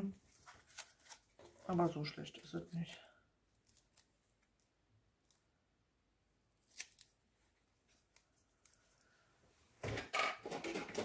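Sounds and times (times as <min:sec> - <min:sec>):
paper being handled: 0:00.0 - 0:03.0.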